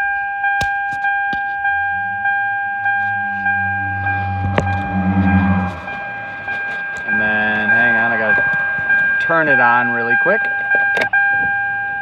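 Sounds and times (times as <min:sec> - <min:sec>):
dashboard warning chime dinging: 0:00.0 - 0:12.0
low hum: 0:01.4 - 0:10.0.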